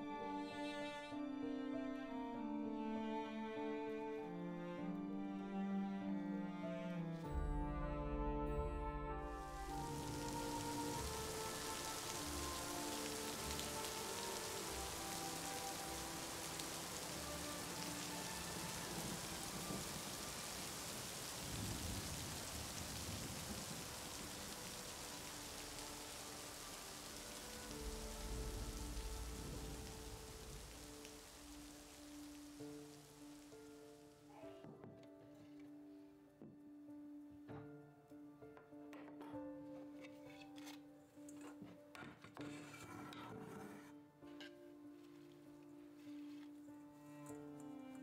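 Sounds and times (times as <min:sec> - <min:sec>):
soft ambient music: 0:00.0 - 0:48.0
steady rain falling: 0:07.4 - 0:34.4.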